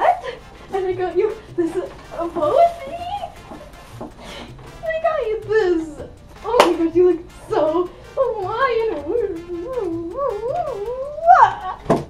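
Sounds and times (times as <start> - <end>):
girl whining: 9.4 - 11.9.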